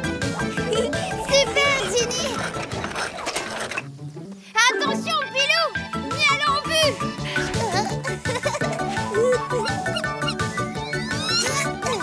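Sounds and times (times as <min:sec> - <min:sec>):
cartoon mechanical clicking and rattling: 0:01.3 - 0:03.9.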